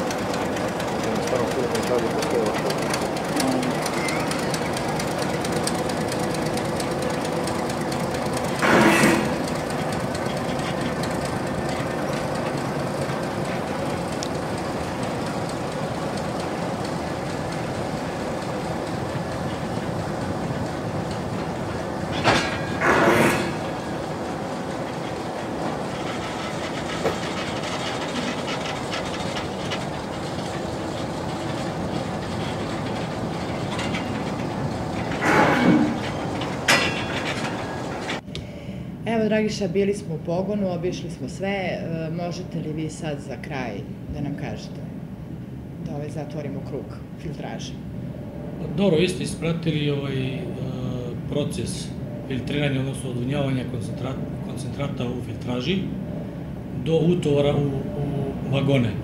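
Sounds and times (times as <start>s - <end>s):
locomotive engine and wheels: 0.0s - 59.0s
loud metal clank: 8.6s - 9.7s, 22.1s - 23.8s, 32.4s - 38.2s.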